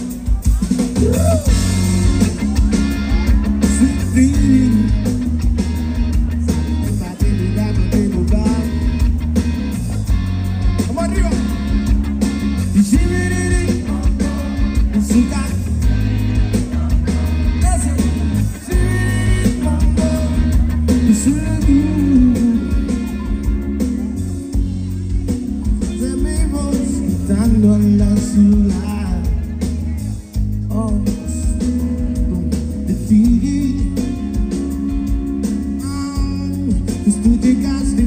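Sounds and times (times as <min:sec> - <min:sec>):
drum kit: 0:00.0 - 0:38.0
electric bass: 0:00.0 - 0:38.0
electric guitar: 0:00.0 - 0:38.0
vocalist singing into microphone: 0:12.7 - 0:15.9, 0:16.7 - 0:23.6, 0:25.8 - 0:29.8, 0:30.7 - 0:34.2, 0:35.6 - 0:38.0.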